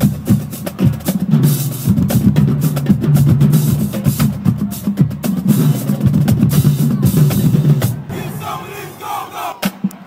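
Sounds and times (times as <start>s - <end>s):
people shouting: 8.1s - 10.0s.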